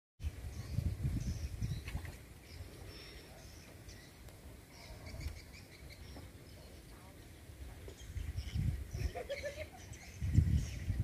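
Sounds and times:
bird chirps: 0.5 - 7.1.

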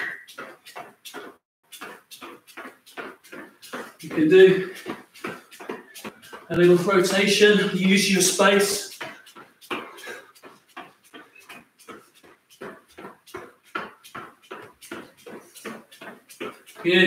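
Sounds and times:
sneaker footfalls on tiled floor: 0.0 - 17.0.

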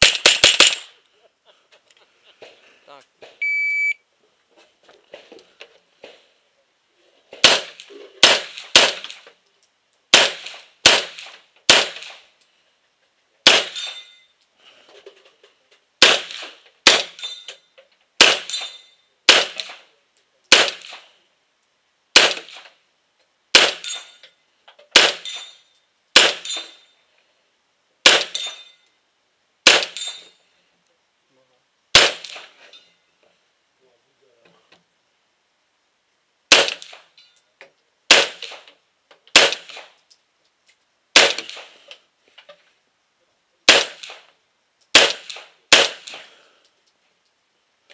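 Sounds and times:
rifle shots: 0.0 - 0.9, 7.4 - 9.2, 10.1 - 12.3, 13.4 - 14.0, 16.0 - 17.2, 18.2 - 19.9, 20.5 - 21.1, 22.1 - 22.7, 23.5 - 24.0, 24.9 - 25.4, 26.2 - 26.8, 28.0 - 28.6, 29.6 - 30.1, 31.9 - 32.6, 36.5 - 37.1, 38.1 - 38.7, 39.3 - 39.9, 41.1 - 41.8, 43.7 - 44.3, 44.9 - 46.3.

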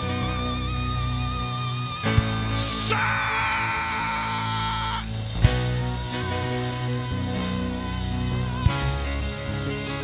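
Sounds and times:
worship band music: 0.0 - 10.0.

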